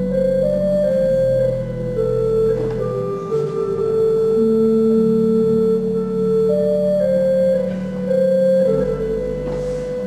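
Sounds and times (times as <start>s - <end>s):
pipe organ sustained chords: 0.0s - 10.0s.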